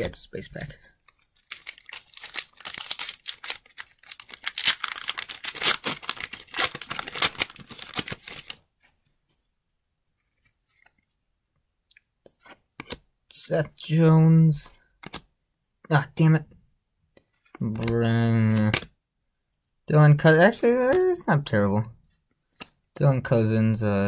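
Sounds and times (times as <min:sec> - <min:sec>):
foil wrapper tearing and crinkling: 0:01.4 - 0:08.6.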